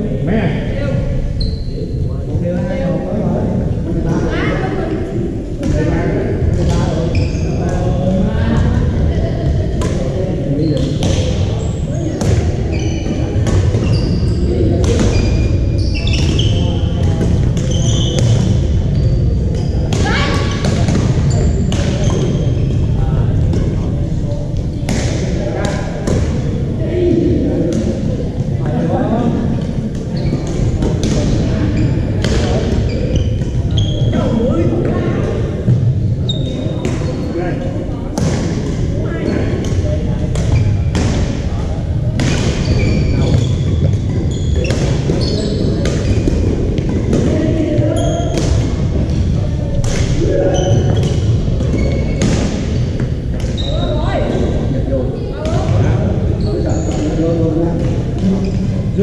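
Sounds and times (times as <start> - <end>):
players' voices: 0.0 - 59.0
sneakers squeaking on hardwood: 1.4 - 1.8, 7.0 - 7.7, 10.7 - 23.6, 30.0 - 34.3, 42.2 - 54.4, 55.4 - 57.2.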